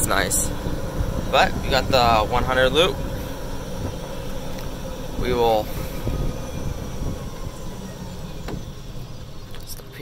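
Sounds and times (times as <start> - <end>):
faint steady whine: 0.0 - 10.0
golf cart rumbling: 0.0 - 10.0.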